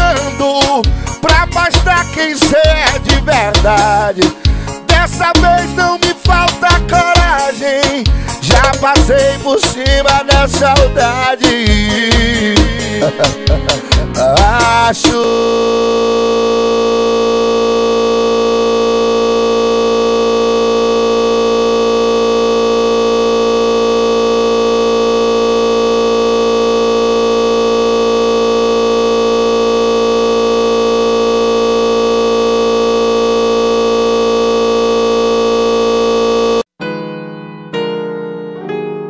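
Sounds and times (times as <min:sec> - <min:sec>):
loud buzzing digital drone: 0:14.6 - 0:36.7.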